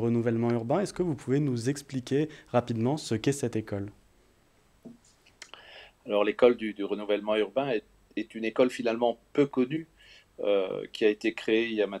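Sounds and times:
person speaking: 0.0 - 4.0
person drawing breath: 5.5 - 6.0, 10.0 - 10.3.

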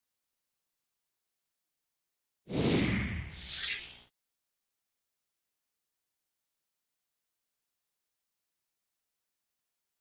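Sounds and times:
whoosh with hissing sweep: 2.5 - 4.1.

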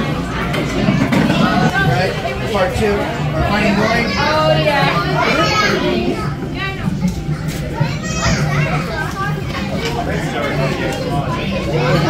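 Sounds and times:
children talking and calling out: 0.0 - 12.0
visitor chatter: 0.0 - 12.0.

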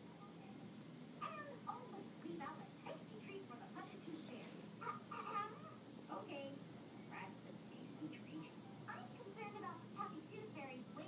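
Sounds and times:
cat meowing: 1.2 - 1.6.

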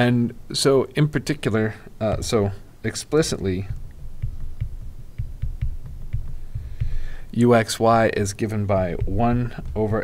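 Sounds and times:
stylus tapping on tablet: 3.3 - 7.2, 8.8 - 10.0.

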